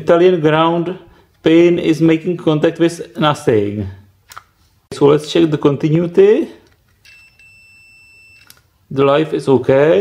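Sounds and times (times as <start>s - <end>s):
multimeter continuity beep: 7.0s - 8.6s.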